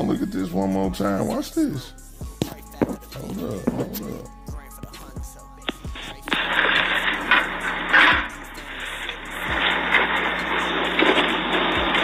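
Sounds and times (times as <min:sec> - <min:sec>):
outdoor hiss and rush: 0:05.2 - 0:12.0.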